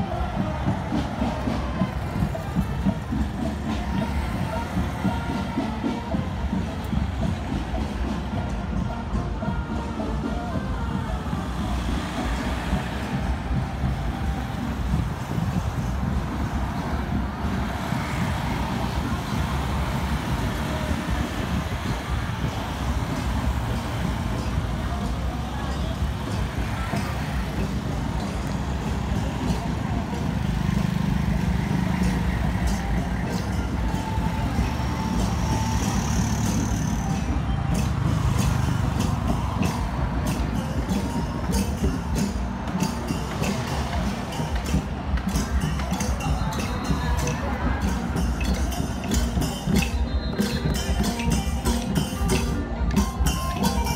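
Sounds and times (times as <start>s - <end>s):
murmur of voices: 0.0s - 53.9s
street traffic rumble: 0.0s - 53.9s.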